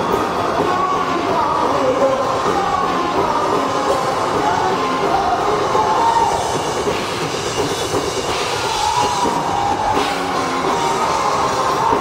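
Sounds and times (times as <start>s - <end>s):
hard rock band playing live: 0.0s - 12.0s.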